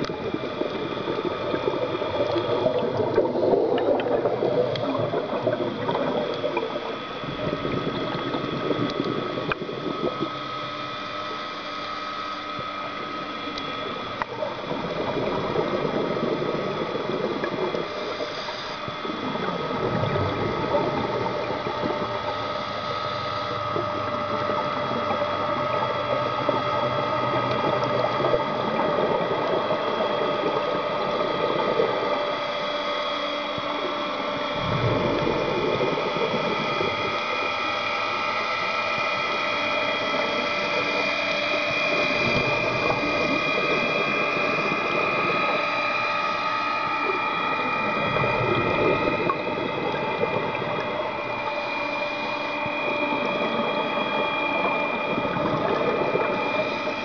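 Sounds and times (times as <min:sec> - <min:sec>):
diver exhaling bubbles: 0:00.0 - 0:10.4, 0:13.8 - 0:23.0, 0:34.5 - 0:37.6, 0:40.0 - 0:45.7, 0:52.8 - 0:57.0
steady mechanical hum: 0:00.0 - 0:57.0.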